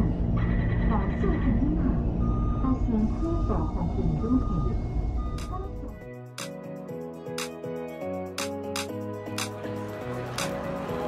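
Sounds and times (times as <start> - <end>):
low steady rumble: 0.0 - 6.0
short electronic beeps: 2.2 - 6.0.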